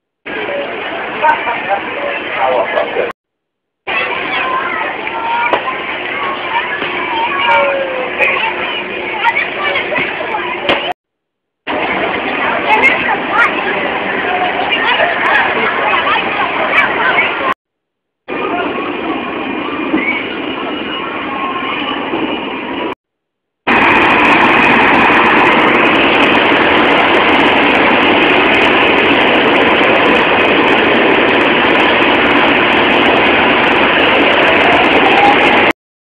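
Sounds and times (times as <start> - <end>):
carnival rides running: 0.1 - 3.1, 3.9 - 11.0, 11.7 - 17.6, 18.3 - 23.0, 23.6 - 35.8
crowd noise: 0.2 - 3.2, 3.9 - 11.0, 11.7 - 17.6, 18.3 - 23.0, 23.7 - 35.8.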